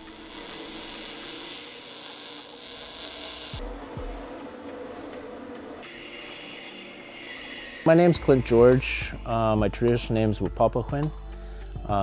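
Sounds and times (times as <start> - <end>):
power tool cutting steel: 0.0 - 3.8, 5.8 - 9.3.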